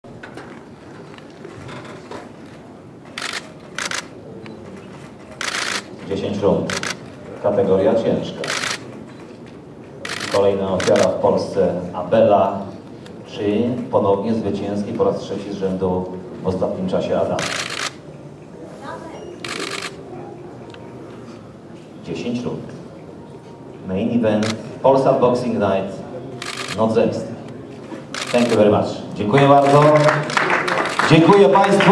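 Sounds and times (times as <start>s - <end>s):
room murmur: 0.1s - 31.9s
camera shutters clicking: 3.1s - 6.0s, 6.6s - 7.1s, 8.4s - 9.2s, 10.0s - 11.2s, 17.4s - 18.0s, 19.4s - 20.0s, 24.4s - 24.7s, 26.4s - 26.9s, 27.8s - 28.7s.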